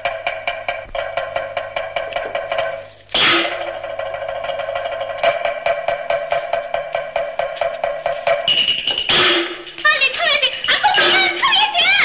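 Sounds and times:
rapid wood-block beat: 0:00.0 - 0:09.9
cymbal crash: 0:03.1 - 0:07.0.

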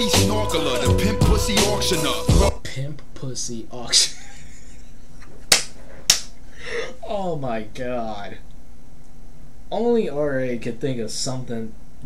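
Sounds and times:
sharp hand slaps: 0:05.5 - 0:06.3.

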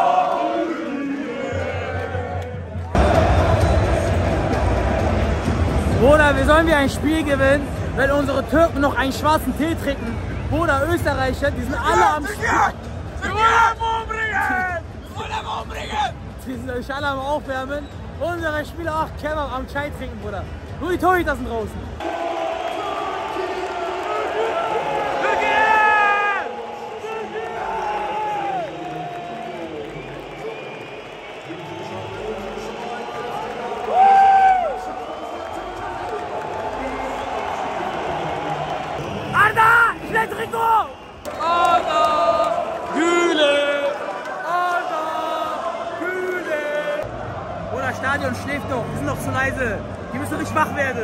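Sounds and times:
stadium crowd hubbub: 0:00.0 - 0:51.0
men shouting and whooping: 0:33.8 - 0:34.8.

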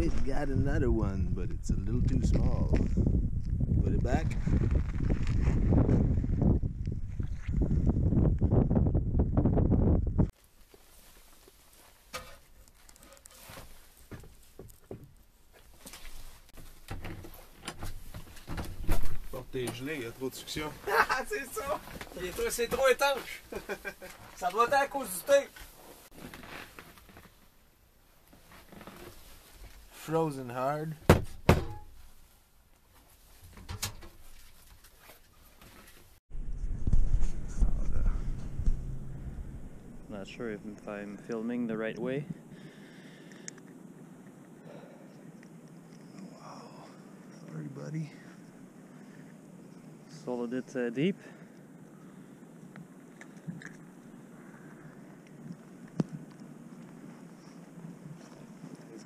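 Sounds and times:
microphone handling noise: 0:00.0 - 0:10.3, 0:35.7 - 0:40.9.

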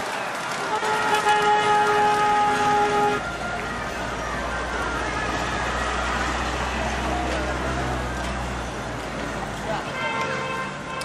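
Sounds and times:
vehicle horn: 0:00.6 - 0:03.2, 0:09.8 - 0:11.0
engine rumble: 0:01.7 - 0:10.0.

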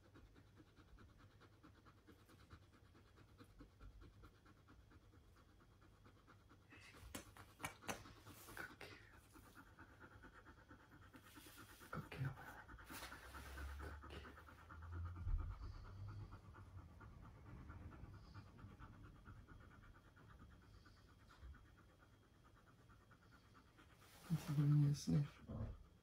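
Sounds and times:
dog panting: 0:00.0 - 0:26.0.

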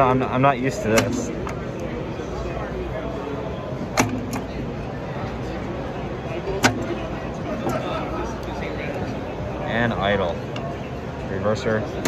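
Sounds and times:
steady hall noise: 0:00.0 - 0:12.0.

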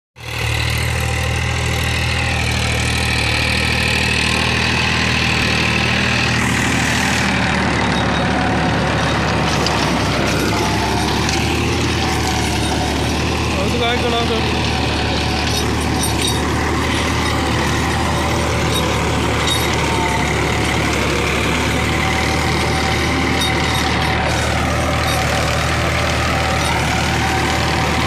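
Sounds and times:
tractor diesel engine running: 0:00.2 - 0:28.0.

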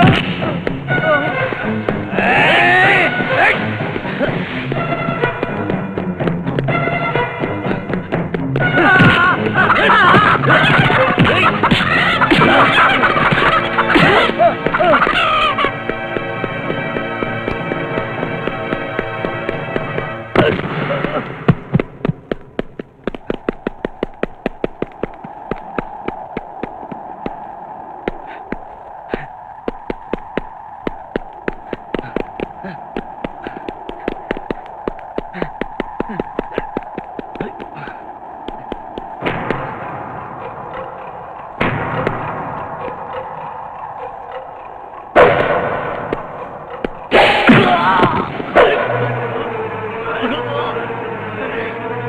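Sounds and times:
fast run of sharp cracks: 0:00.0 - 0:49.2.

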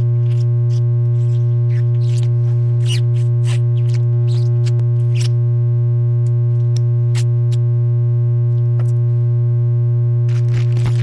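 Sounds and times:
low electronic drone tone: 0:00.0 - 0:11.0.

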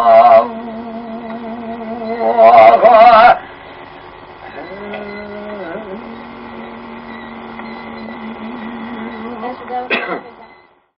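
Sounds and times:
man holding a long low note: 0:00.0 - 0:03.4, 0:04.6 - 0:09.8.

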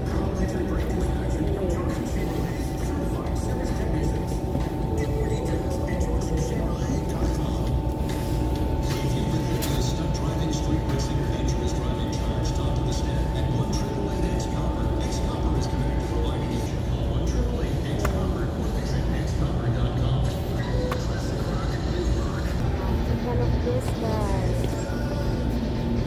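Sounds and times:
background music: 0:00.0 - 0:26.0
indistinct voices: 0:00.0 - 0:26.0
steady low rumble: 0:00.0 - 0:26.0.

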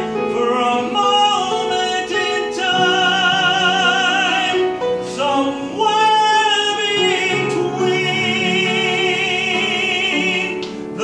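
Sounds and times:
man singing with vibrato: 0:00.0 - 0:11.0
steady musical accompaniment: 0:00.0 - 0:11.0.

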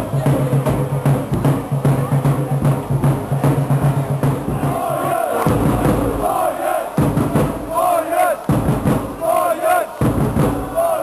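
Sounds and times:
bass drum beat: 0:00.0 - 0:11.0
crowd chanting in unison: 0:00.0 - 0:11.0.

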